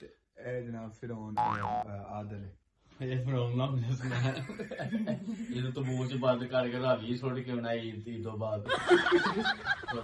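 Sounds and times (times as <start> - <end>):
boing comedy sound effect: 1.4 - 1.9
men laughing loudly: 8.7 - 10.0.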